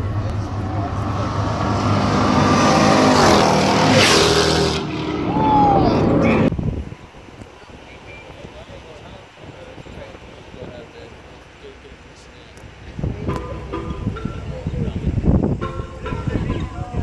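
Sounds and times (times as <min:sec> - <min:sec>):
car accelerating past: 0:00.0 - 0:06.5.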